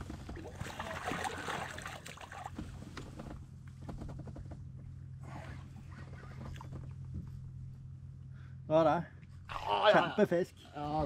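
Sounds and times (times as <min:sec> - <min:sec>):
water splashing beside boat: 0:00.0 - 0:03.3.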